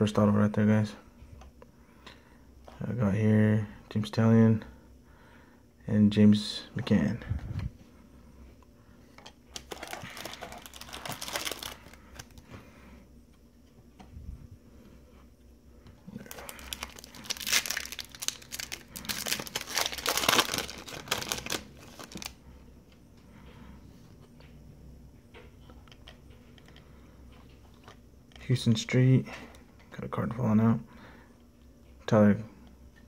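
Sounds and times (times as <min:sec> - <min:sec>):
cards being handled: 0:09.5 - 0:12.4
foil wrapper tearing and crinkling: 0:09.6 - 0:12.4, 0:16.2 - 0:22.4.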